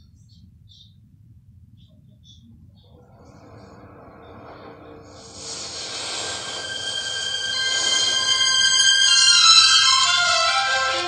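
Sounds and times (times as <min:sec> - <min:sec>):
hissing rush: 0:03.0 - 0:11.0
shrill steady tones: 0:03.0 - 0:11.0
high-pitched squealing from tv speaker: 0:04.4 - 0:11.0.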